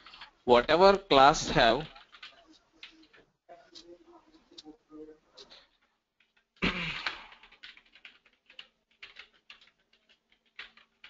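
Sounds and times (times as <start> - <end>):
keyboard typing: 0.0 - 11.0.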